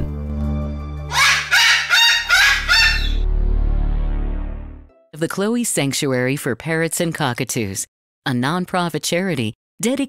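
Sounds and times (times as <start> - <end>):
rooster crowing: 1.1 - 3.2.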